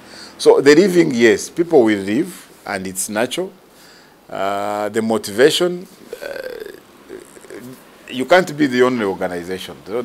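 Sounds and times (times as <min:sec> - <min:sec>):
man saying uh: 0:05.8 - 0:10.0.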